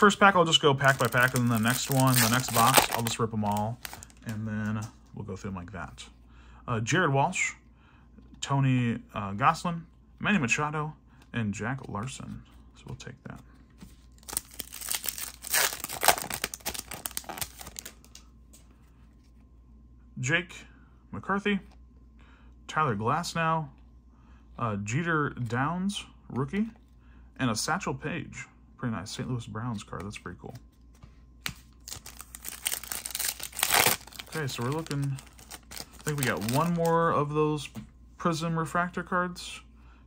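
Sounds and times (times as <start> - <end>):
wrapper tearing and crinkling: 0.8 - 4.2, 14.2 - 18.0, 31.8 - 37.0.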